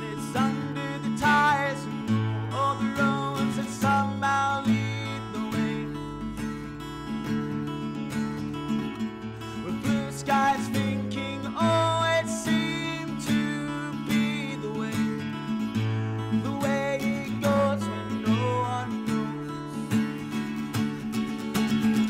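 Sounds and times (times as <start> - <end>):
man singing: 0.0 - 6.6, 9.4 - 20.4
acoustic guitar strumming: 0.0 - 22.0.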